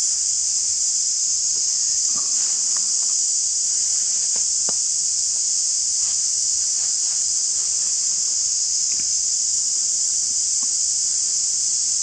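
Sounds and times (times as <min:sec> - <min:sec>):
insect chorus drone: 0:00.0 - 0:12.0.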